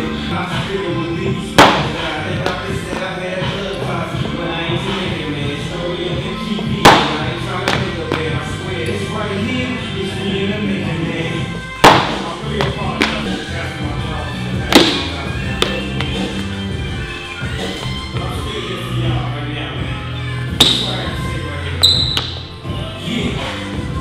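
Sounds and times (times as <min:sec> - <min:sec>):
background music with steady beat: 0:00.0 - 0:24.0.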